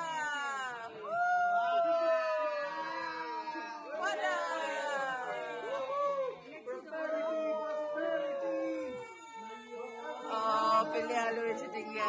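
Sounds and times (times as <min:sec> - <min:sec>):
group cheering in long cries: 0:00.0 - 0:12.0.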